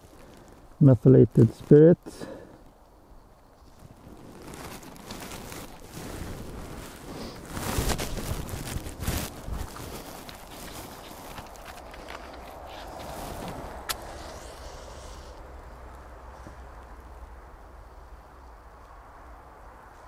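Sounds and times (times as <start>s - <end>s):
rustling and crunching in snow: 0.0s - 2.4s, 3.5s - 20.0s.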